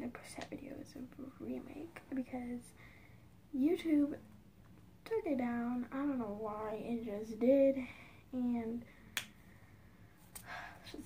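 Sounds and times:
soft breathy sound: 2.7 - 3.4, 7.8 - 11.0.

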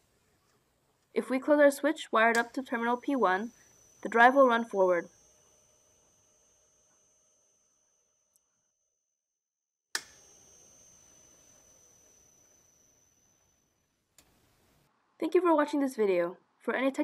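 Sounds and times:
sharp click: 2.3 - 2.7, 10.0 - 10.2
electric motor whine: 2.4 - 8.3, 10.0 - 14.6.

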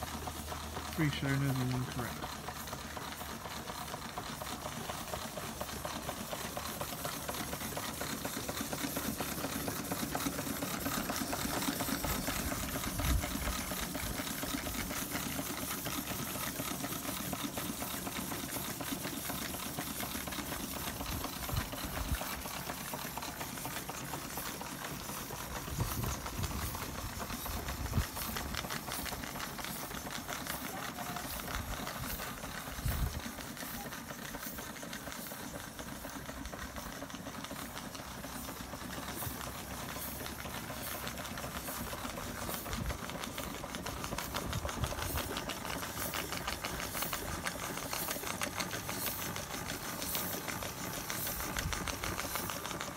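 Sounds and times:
steam hissing: 0.0 - 52.9
toy steam engines clattering: 0.0 - 52.9.

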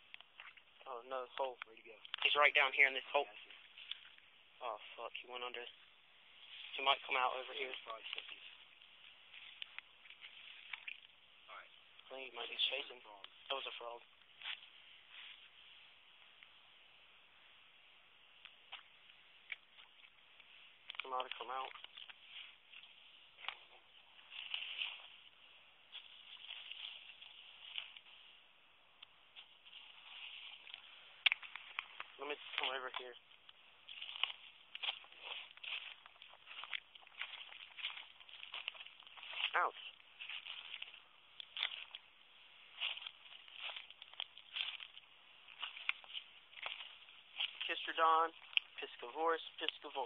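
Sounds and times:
footsteps crunching dry leaves: 0.0 - 16.6, 18.4 - 50.0
faint running creek water: 0.0 - 50.0.

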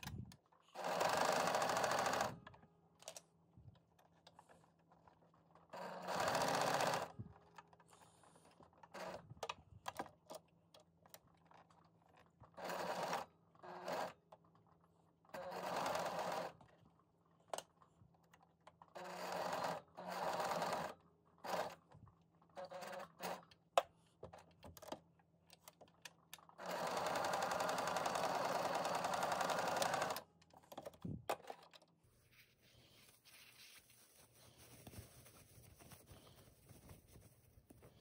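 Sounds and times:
sewing machine stitching: 0.7 - 2.4, 5.7 - 7.1, 12.5 - 14.2, 15.3 - 16.6, 18.9 - 21.8, 22.6 - 23.5, 26.6 - 30.3
sewing machine clicks: 25.6 - 31.0.

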